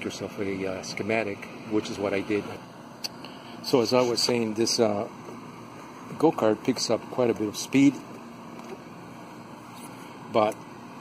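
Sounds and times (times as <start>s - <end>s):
steady background rumble and hiss: 0.0s - 11.0s.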